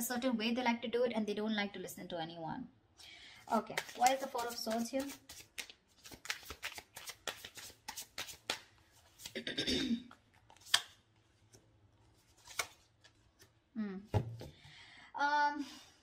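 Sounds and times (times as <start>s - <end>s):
cards being shuffled: 3.5s - 9.4s, 10.3s - 11.0s, 12.2s - 13.5s.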